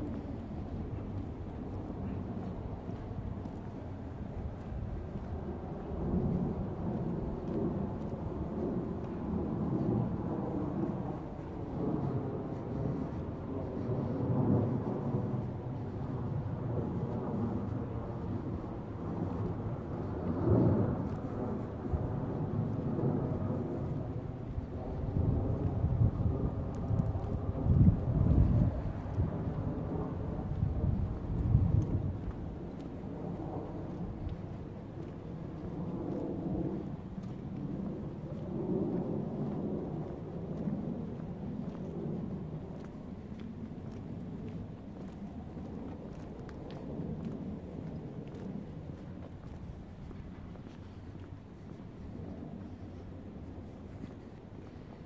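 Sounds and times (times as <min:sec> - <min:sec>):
wind buffeting microphone: 0:00.0 - 0:55.0.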